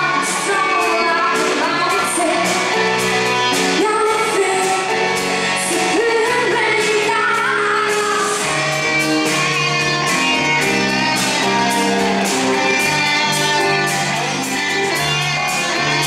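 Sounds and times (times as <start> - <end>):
woman singing: 0.0 - 8.6
pop band playing: 0.0 - 16.0.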